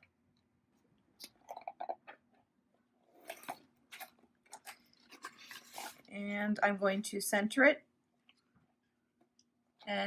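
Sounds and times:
paper backing crinkling: 3.2 - 6.1.

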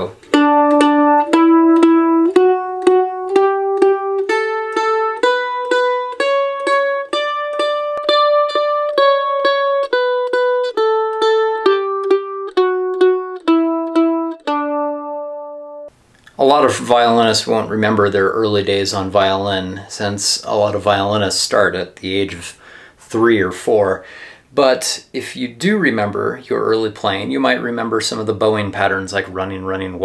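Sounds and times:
mandolin playing a scale: 0.0 - 16.0.

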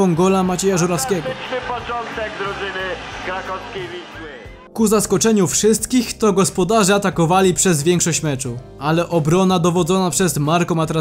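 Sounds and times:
man commentating: 0.0 - 5.2
narration voice: 0.0 - 11.0.

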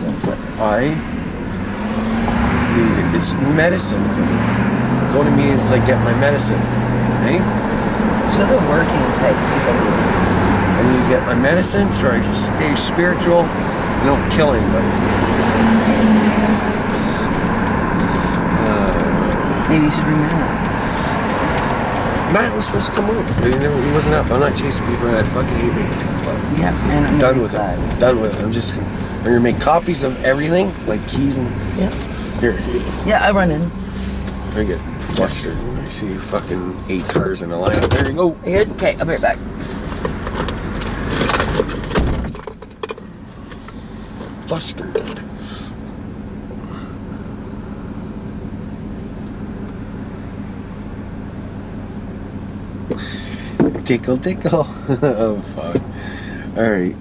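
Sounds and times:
car engine and tyre road noise: 0.0 - 57.0
clinking and rustling: 39.6 - 43.7.

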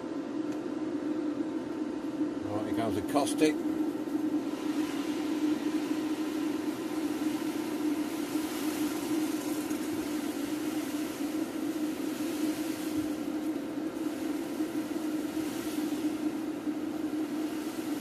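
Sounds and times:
electric fan humming: 0.0 - 18.0
soft hiss of dissolving soda: 4.0 - 18.0.

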